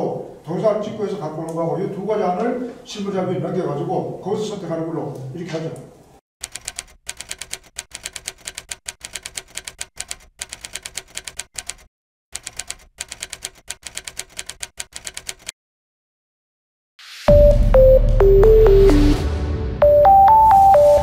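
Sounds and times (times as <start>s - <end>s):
typewriter key clicks: 6.4s - 15.5s.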